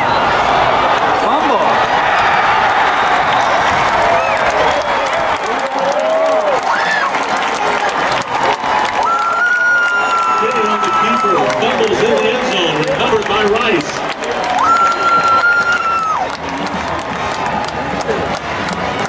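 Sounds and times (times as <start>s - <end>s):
crowd cheering and applauding: 0.0s - 19.0s.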